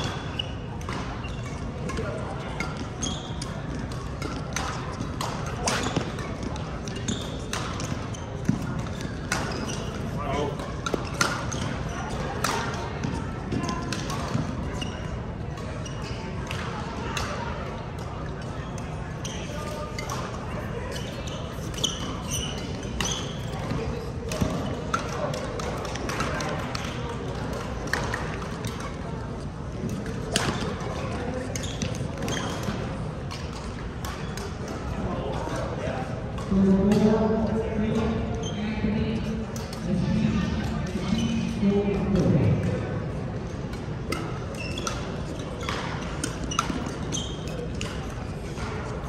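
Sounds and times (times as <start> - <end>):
rackets striking shuttlecock: 0.0 - 14.7, 16.4 - 35.7, 40.6 - 48.8
shoes squeaking on court floor: 0.0 - 17.3, 18.0 - 37.2, 37.8 - 42.4, 43.5 - 49.0
murmur of voices: 0.0 - 49.0
racket striking shuttlecock: 10.6 - 12.8, 22.9 - 28.9.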